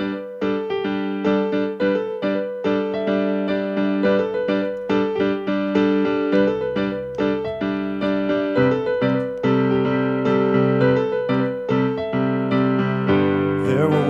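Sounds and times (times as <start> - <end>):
keyboard playing repeated chords: 0.0 - 14.0.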